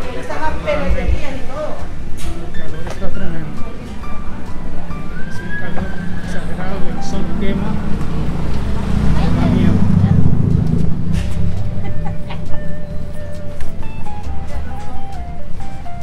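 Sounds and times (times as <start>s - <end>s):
car traffic: 0.0s - 16.0s
people's voices: 0.0s - 16.0s
music from loudspeakers: 11.6s - 16.0s.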